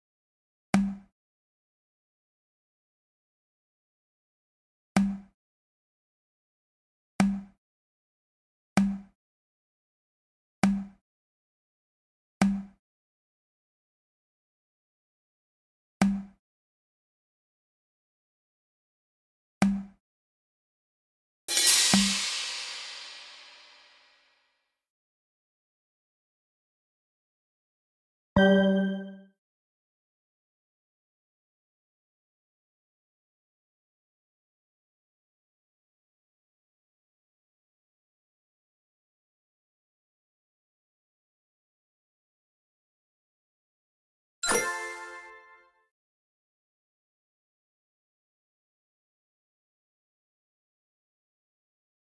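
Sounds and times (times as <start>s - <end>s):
cymbal-like crash: 21.5s - 24.1s
short low tone sound effect: 28.4s - 29.2s.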